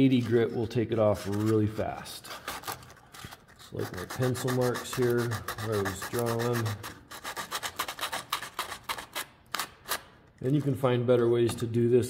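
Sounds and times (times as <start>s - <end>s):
sandpaper rubbing on wood: 3.7s - 9.3s.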